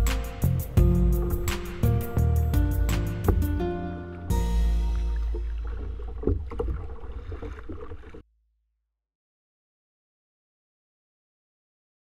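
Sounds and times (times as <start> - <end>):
paddle splashes and knocks: 2.9 - 8.2.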